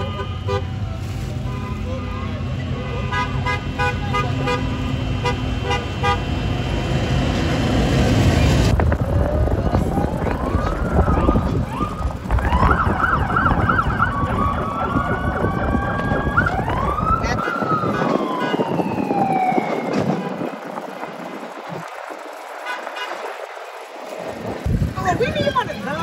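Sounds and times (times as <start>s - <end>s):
emergency vehicle siren: 0.0s - 24.6s
low rumble: 0.7s - 26.0s.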